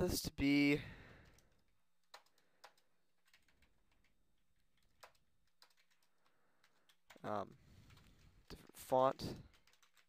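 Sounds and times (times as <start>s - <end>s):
faint keyboard keystrokes: 1.1s - 10.0s.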